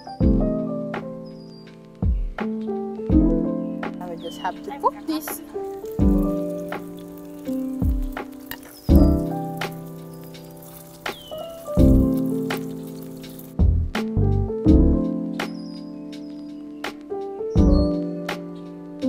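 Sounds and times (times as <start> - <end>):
background music held chords: 0.0 - 19.0.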